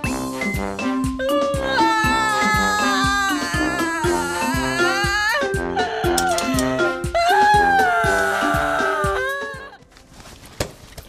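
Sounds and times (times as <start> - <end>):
upbeat comic music: 0.0 - 9.8
woman wailing sobs: 1.2 - 9.8.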